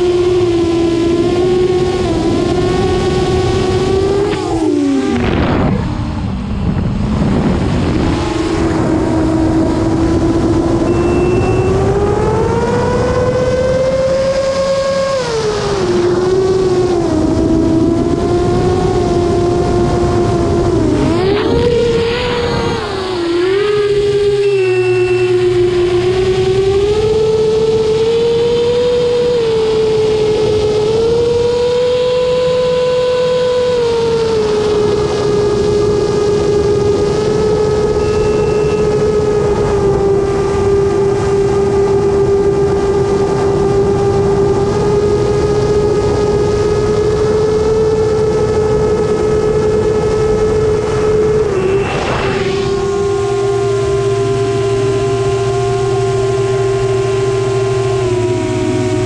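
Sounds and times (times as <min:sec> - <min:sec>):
drone motors whining: 0:00.0 - 0:59.0.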